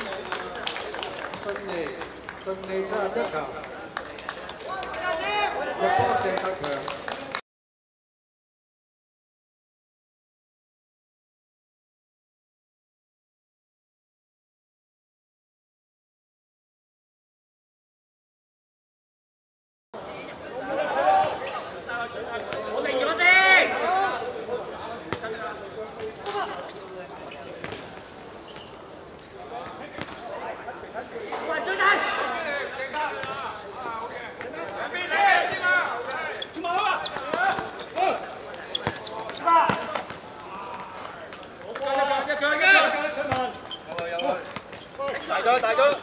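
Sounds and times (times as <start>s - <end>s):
players shouting: 31.5s - 46.0s
football kicked and bouncing: 43.2s - 45.2s.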